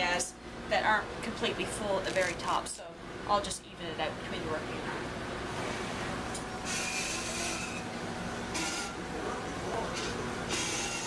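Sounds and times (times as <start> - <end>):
steady machinery noise: 4.0 - 11.0
rasping hiss: 6.6 - 7.8.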